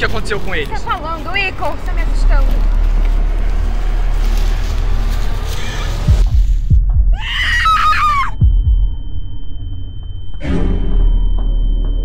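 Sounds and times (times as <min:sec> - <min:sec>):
low drone: 0:00.0 - 0:07.2, 0:08.0 - 0:12.0
deep heartbeat-like thuds: 0:05.9 - 0:07.5, 0:08.2 - 0:12.0
scream: 0:07.1 - 0:08.4
high steady ringing tone: 0:08.2 - 0:12.0.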